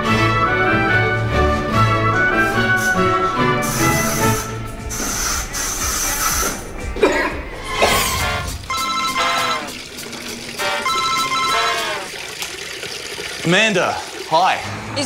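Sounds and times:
telephone ringing: 8.7s - 9.9s, 10.7s - 12.1s.

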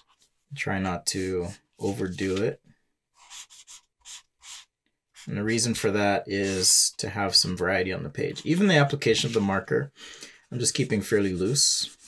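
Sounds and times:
marker strokes on paper: 3.2s - 5.3s, 6.3s - 6.8s, 11.3s - 12.0s.

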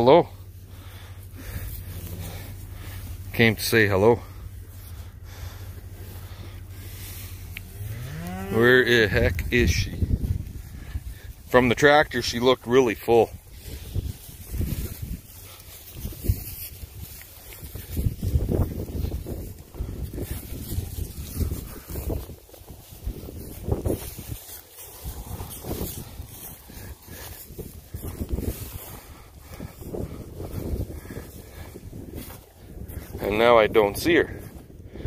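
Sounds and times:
wind buffeting microphone: 4.0s - 35.0s.

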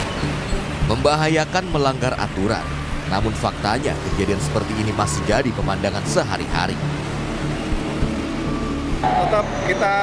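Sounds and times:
motorbikes passing: 0.0s - 10.0s
quiet background music: 0.0s - 10.0s
road traffic noise: 0.0s - 10.0s.

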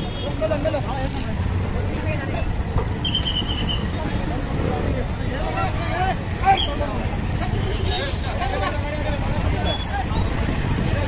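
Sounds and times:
vehicle engines rumbling: 0.0s - 11.0s.

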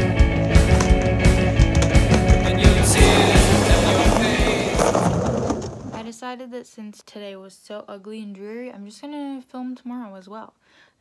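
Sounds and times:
background music: 0.0s - 5.6s
skateboard wheels rolling on asphalt: 0.3s - 6.0s.

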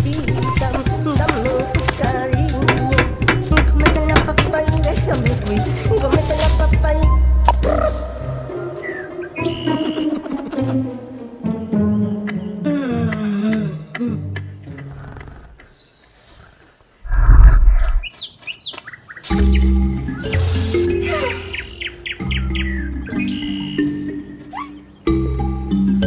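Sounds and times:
cartoon background music: 0.0s - 15.0s, 19.3s - 26.0s
bird-like chirps: 8.4s - 10.2s, 15.6s - 25.1s.

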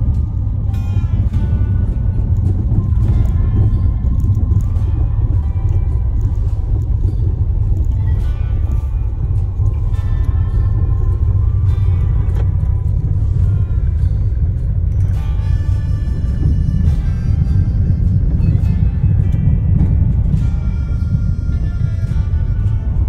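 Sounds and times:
car jolts and rattles: 0.0s - 23.0s
car rumbling on dirt road: 0.0s - 23.0s.

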